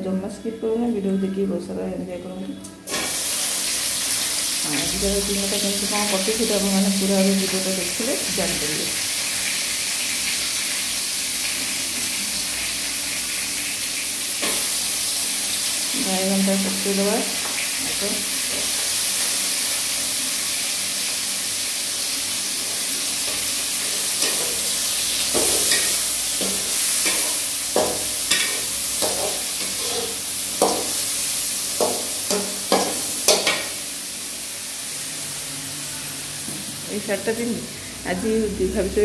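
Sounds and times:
food sizzling in a pan: 0:02.9 - 0:39.0
metal spatula scraping pan: 0:23.3 - 0:31.0.

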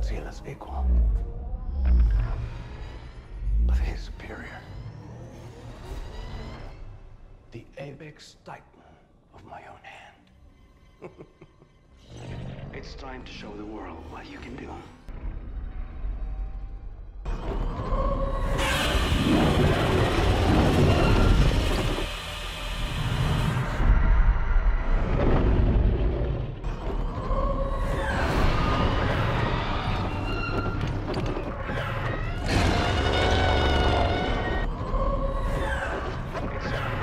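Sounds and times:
low rumble: 0:00.0 - 0:07.2.

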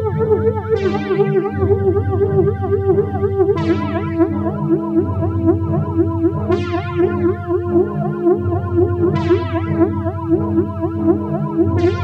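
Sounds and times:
pulsing synth bass: 0:00.0 - 0:12.0
synthesizer notes bending: 0:00.0 - 0:12.0.

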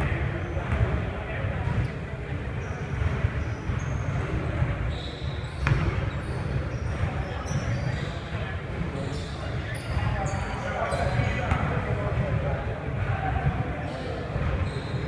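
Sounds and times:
sneakers squeaking: 0:00.0 - 0:15.0
basketball bouncing on wood floor: 0:05.6 - 0:06.1.

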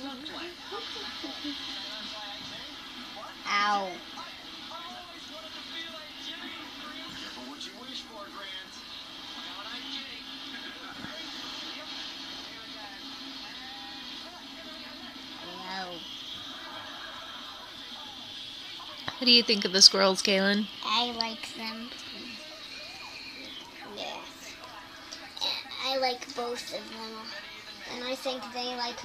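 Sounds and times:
steady hiss: 0:00.0 - 0:29.0
television speech: 0:00.0 - 0:29.0.

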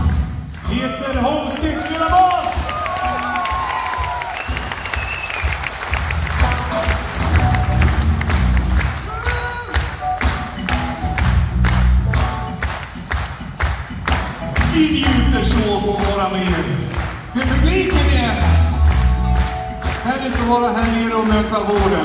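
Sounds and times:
live rock band playing: 0:00.0 - 0:22.0
audience cheering: 0:00.6 - 0:09.9.

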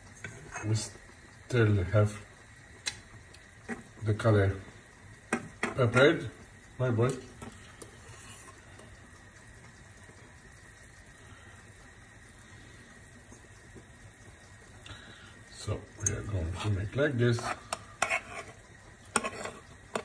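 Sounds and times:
faint hiss from frying pan: 0:00.0 - 0:20.0
fork scraping a pan: 0:00.2 - 0:00.8, 0:03.7 - 0:03.9, 0:07.8 - 0:08.6, 0:16.4 - 0:20.0.

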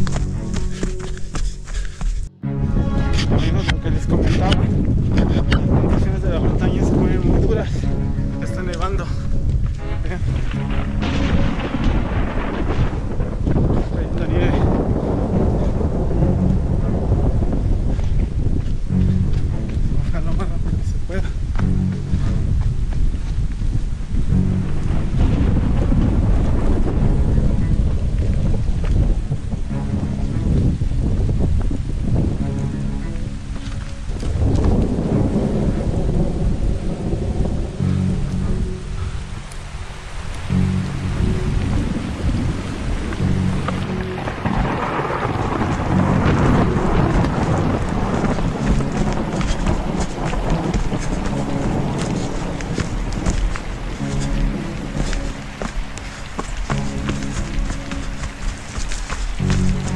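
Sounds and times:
background music: 0:00.0 - 0:59.9
rain on camera microphone: 0:02.9 - 0:59.9.

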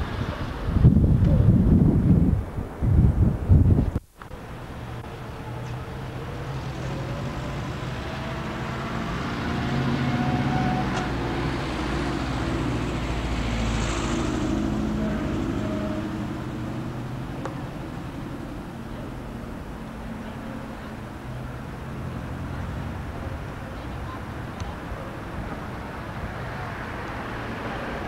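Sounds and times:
street traffic: 0:00.0 - 0:28.0
wind rumble on microphone: 0:00.0 - 0:28.0.

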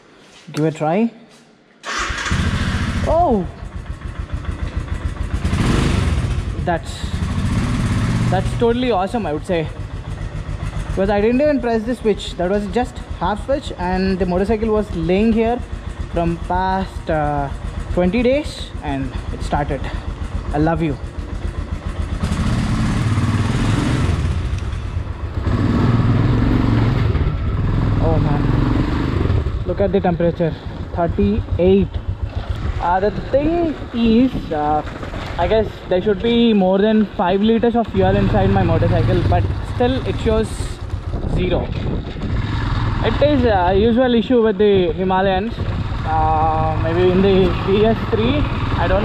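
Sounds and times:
motorcycle engine running: 0:02.2 - 0:49.0.

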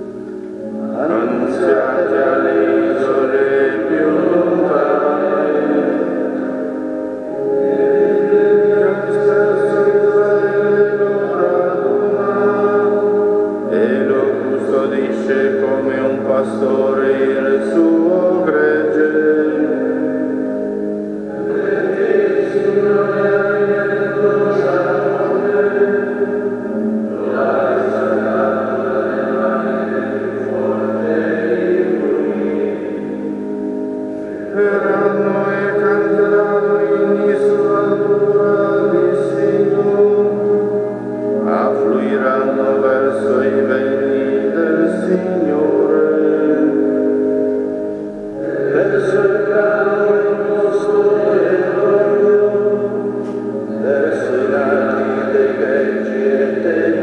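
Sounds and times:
slow chant-like sacred music: 0:00.0 - 0:57.0
sung church psalmody chord: 0:00.0 - 0:57.0.

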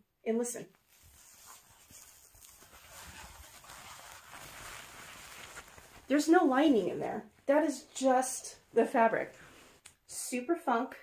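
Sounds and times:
fabric crinkling rustle: 0:00.6 - 0:09.8.

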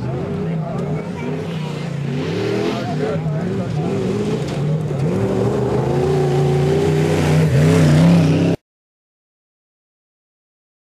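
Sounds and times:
buggy engine revving hard: 0:00.0 - 0:08.6.

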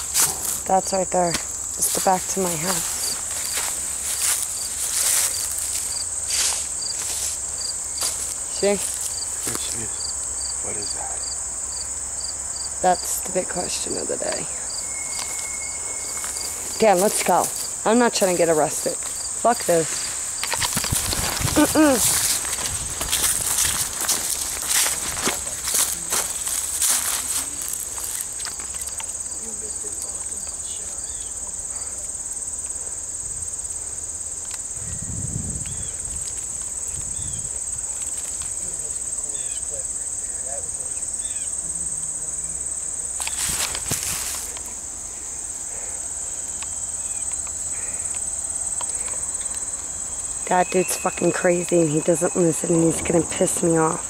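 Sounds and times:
footsteps and rustling: 0:00.0 - 0:09.9, 0:14.2 - 0:29.2, 0:35.7 - 0:39.2, 0:43.2 - 0:44.8
insects droning in grass: 0:00.0 - 0:54.0.

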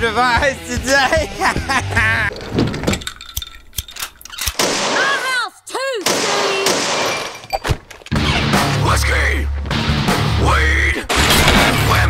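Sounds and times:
sharp cracks: 0:03.2 - 0:05.4.

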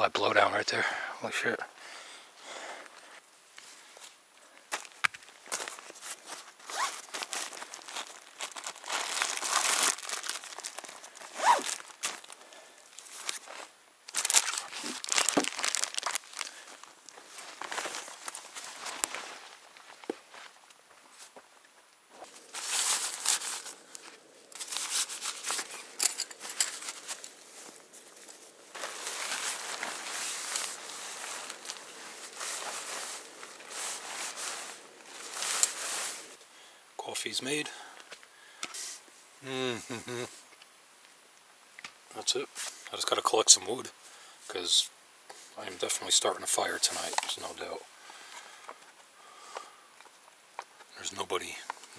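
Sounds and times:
nylon gear rustling: 0:05.2 - 0:21.4, 0:22.1 - 0:36.4.

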